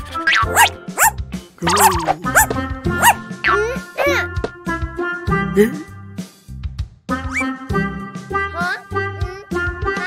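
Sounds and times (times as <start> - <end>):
bouncy children's music: 0.0 - 10.0
cartoon puppy yipping: 0.1 - 4.2.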